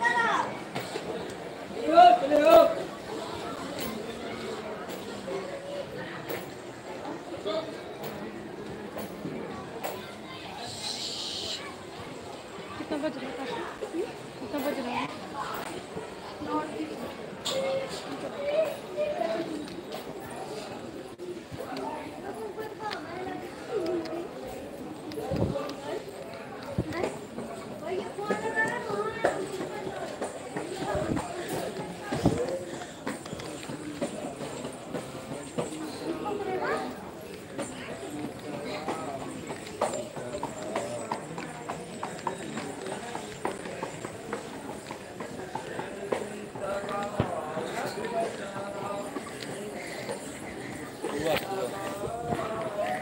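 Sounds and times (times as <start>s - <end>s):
people talking: 0.0s - 53.0s
people's voices: 0.0s - 53.0s
footsteps on concrete stairs: 25.0s - 53.0s.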